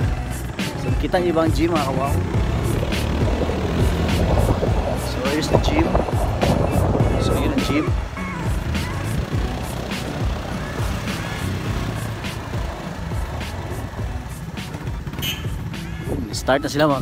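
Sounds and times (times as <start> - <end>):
music with steady beat: 0.0 - 16.3
motorcycle engine running: 0.0 - 17.0
wind on microphone: 1.8 - 9.8.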